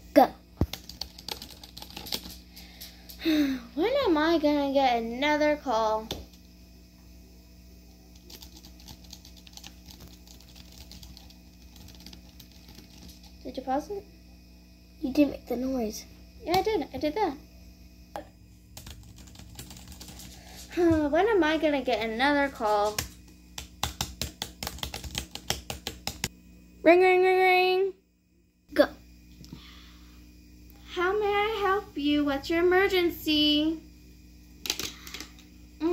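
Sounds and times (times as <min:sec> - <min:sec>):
steady low hum: 0:00.0 - 0:35.9
laptop keyboard tapping: 0:00.6 - 0:02.3, 0:08.3 - 0:13.2, 0:18.8 - 0:20.2, 0:23.0 - 0:26.3.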